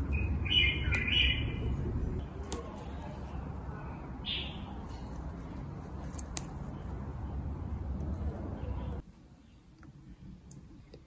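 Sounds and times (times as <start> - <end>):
small bird chirping: 0.0 - 1.8
low background rumble: 0.0 - 2.4.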